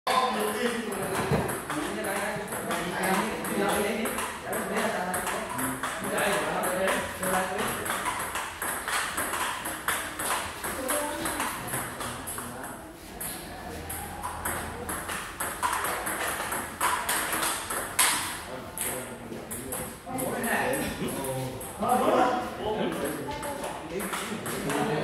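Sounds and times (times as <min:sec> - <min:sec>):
table tennis balls clicking: 0:00.1 - 0:20.7, 0:22.9 - 0:25.0.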